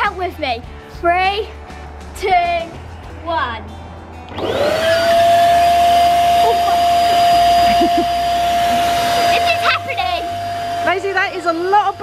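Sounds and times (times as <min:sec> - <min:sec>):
electric pump motor whining: 0:04.3 - 0:12.0.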